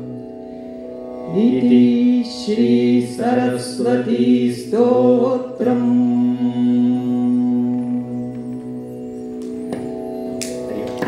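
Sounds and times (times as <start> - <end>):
drone of held musical tones: 0.0 - 11.0.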